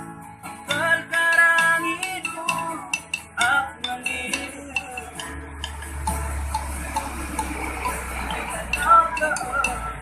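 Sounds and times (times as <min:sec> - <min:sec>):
acoustic guitar strumming: 0:00.0 - 0:10.0
plucked guitar notes: 0:00.0 - 0:10.0.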